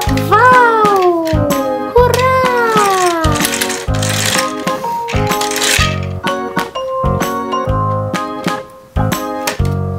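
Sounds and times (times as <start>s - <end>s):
music with plucked notes: 0.0s - 9.9s.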